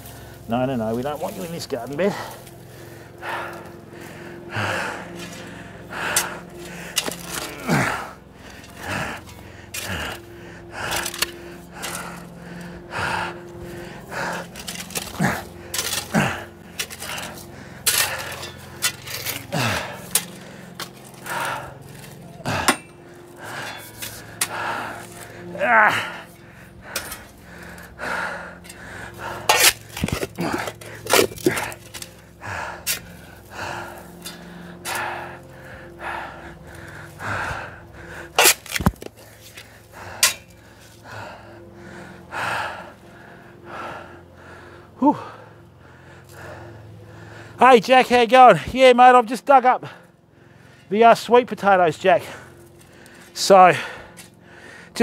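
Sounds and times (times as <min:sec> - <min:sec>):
metal shovel scraping soil: 0:00.0 - 0:02.5, 0:05.1 - 0:10.2, 0:10.8 - 0:12.2, 0:13.1 - 0:27.9, 0:28.6 - 0:35.4, 0:38.3 - 0:41.0
shovel blade clinking on stones: 0:40.2 - 0:40.6.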